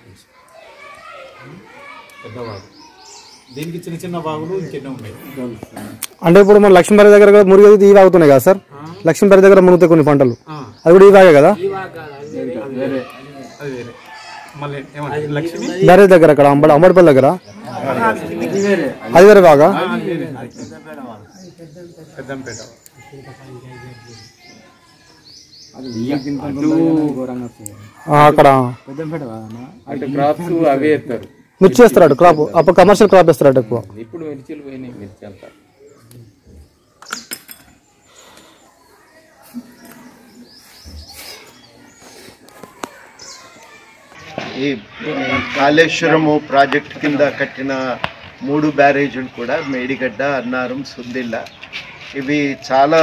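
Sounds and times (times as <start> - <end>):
background voices chattering: 0.0 - 53.0
small birds chirping: 0.0 - 53.0
high bird chirps: 0.9 - 4.8, 35.6 - 45.8.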